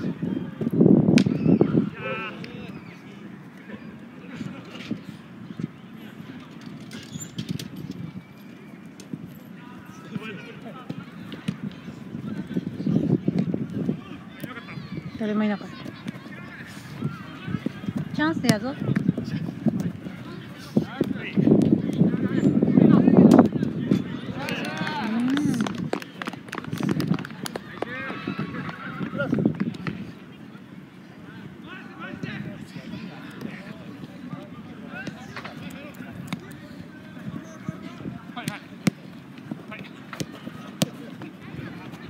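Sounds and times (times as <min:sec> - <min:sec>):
players shouting: 0:13.8 - 0:21.3, 0:27.4 - 0:29.4
players calling out: 0:27.4 - 0:30.4.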